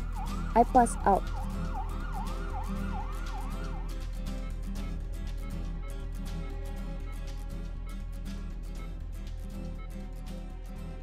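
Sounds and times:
emergency vehicle siren: 0:00.0 - 0:04.6
background music: 0:00.0 - 0:11.0.

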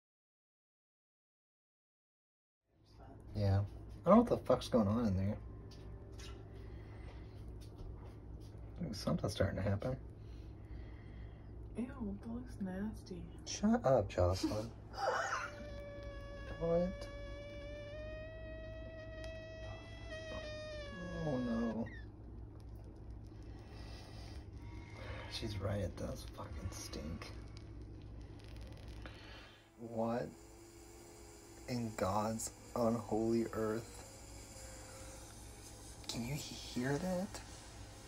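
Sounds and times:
low hum: 0:02.8 - 0:38.0
egg sizzling: 0:14.4 - 0:38.0
egg cooker whistling: 0:29.8 - 0:38.0.

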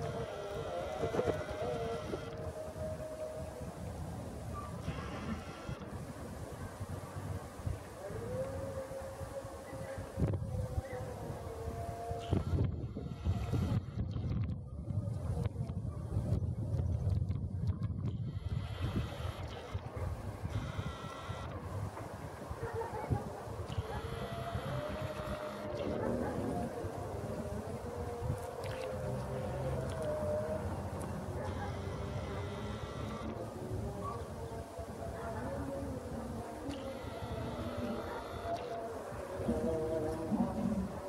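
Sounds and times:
faint steady drone: 0:00.0 - 0:14.8, 0:18.0 - 0:41.0
wind buffeting microphone: 0:00.0 - 0:41.0.

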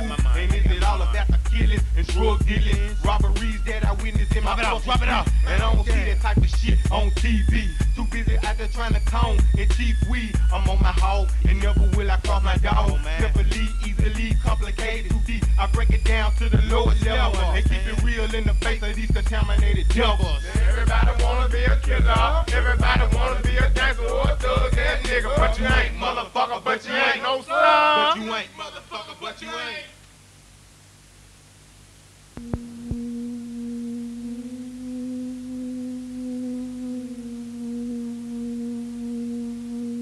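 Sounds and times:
rapping over heavy bass beat: 0:00.0 - 0:26.1.

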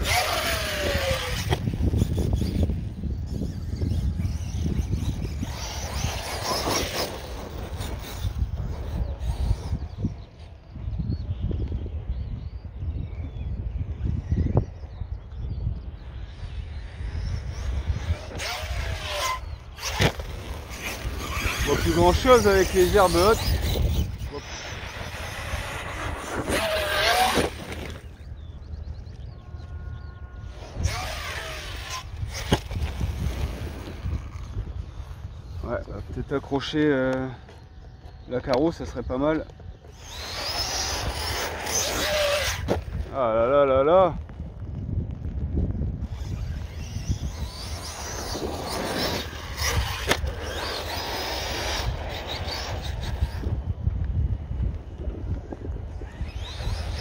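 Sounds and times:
toy truck electric motor whining: 0:00.0 - 0:10.2, 0:16.2 - 0:28.8, 0:29.5 - 0:35.6, 0:37.1 - 0:43.0, 0:46.0 - 0:53.8, 0:55.8 - 0:57.0
tyres rushing on dirt: 0:46.1 - 0:53.7
electric motor whine rising: 0:46.1 - 0:53.8.

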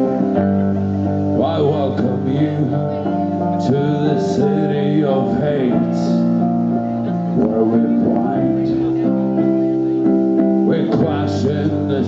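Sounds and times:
live band playing slow song: 0:00.0 - 0:12.0.

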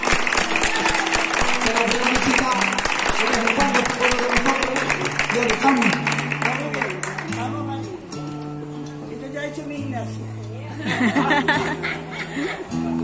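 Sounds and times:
audience applauding: 0:00.0 - 0:07.5
flamenco guitar playing: 0:00.0 - 0:13.0.

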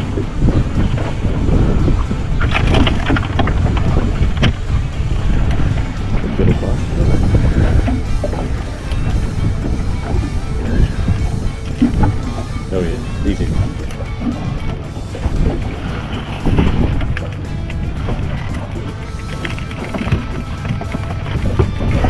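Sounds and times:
background music: 0:00.0 - 0:22.0
wind buffeting microphone: 0:00.0 - 0:22.0.

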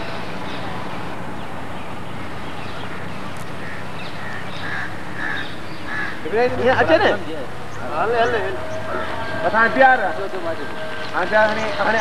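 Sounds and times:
bird calling: 0:02.4 - 0:12.0.

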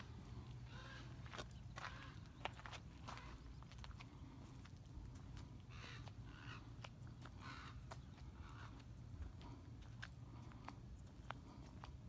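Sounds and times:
footsteps on gravel: 0:00.0 - 0:12.0.

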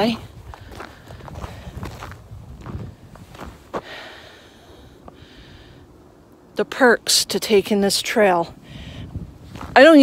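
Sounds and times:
footsteps crunching on snow: 0:00.0 - 0:04.1, 0:09.4 - 0:10.0.

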